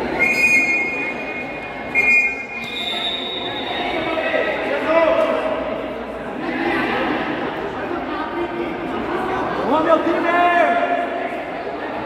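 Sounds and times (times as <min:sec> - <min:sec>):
indoor court noise: 0:00.0 - 0:12.0
referee's whistle blasts: 0:00.1 - 0:04.1.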